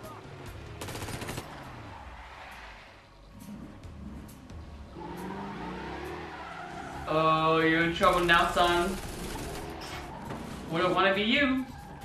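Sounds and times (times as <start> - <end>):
rapid-fire gunshots: 0.6 - 1.6, 8.0 - 10.1.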